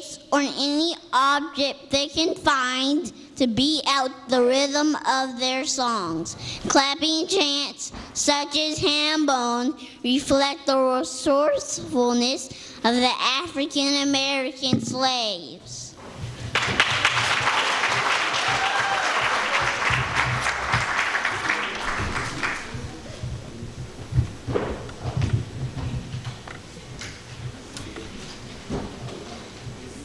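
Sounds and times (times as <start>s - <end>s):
audience applause: 16.5s - 23.0s
knocks and thumps: 23.2s - 26.6s.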